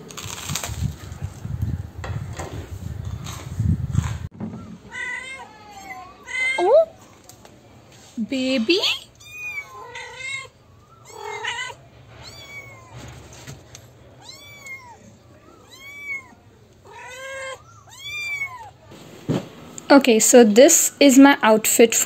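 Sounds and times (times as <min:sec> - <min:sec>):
kittens meowing: 0:09.1 - 0:13.1, 0:14.2 - 0:18.8.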